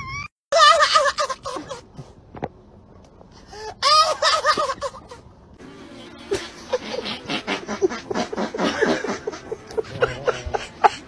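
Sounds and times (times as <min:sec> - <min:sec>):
loud high-pitched laughter: 0:00.5 - 0:01.9, 0:03.8 - 0:05.2, 0:06.3 - 0:11.0.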